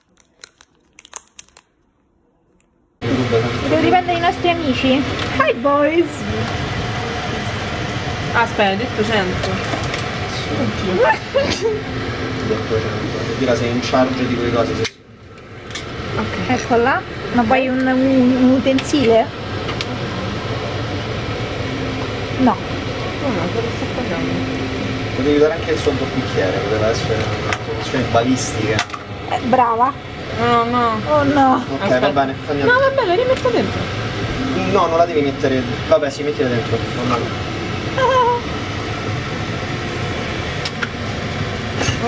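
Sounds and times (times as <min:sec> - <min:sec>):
kitchen appliance humming: 0:03.0 - 0:42.0.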